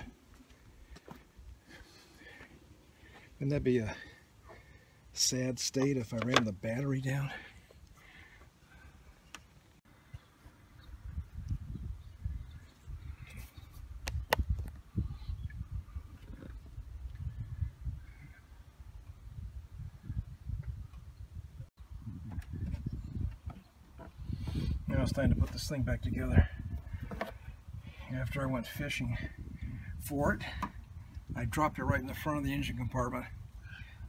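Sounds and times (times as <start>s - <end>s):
wind buffeting microphone: 10.0s - 34.0s.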